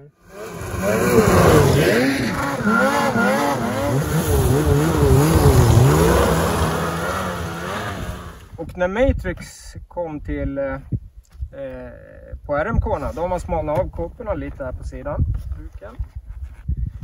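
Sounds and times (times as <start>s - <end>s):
snowmobile engine revving: 0.2s - 8.5s.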